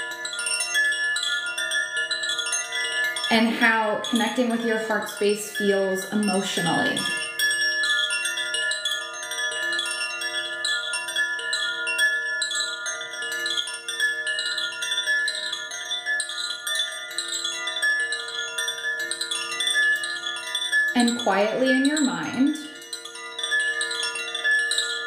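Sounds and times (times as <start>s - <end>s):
wind chime tones ringing: 0.0s - 25.0s.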